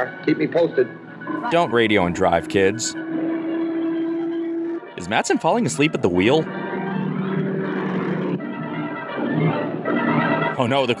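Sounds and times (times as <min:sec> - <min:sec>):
sustained background music: 0:00.0 - 0:11.0
car engine drone: 0:06.0 - 0:10.6.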